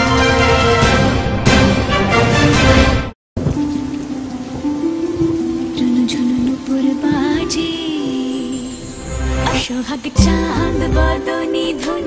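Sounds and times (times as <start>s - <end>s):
news theme music: 0.0s - 3.2s
steady rainfall hiss: 3.4s - 12.0s
soft sustained music: 3.5s - 12.0s.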